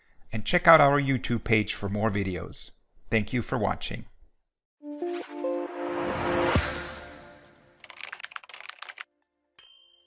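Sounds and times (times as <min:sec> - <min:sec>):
keyboard key clicks: 0:07.8 - 0:09.0
bright ding: 0:09.6 - 0:10.0.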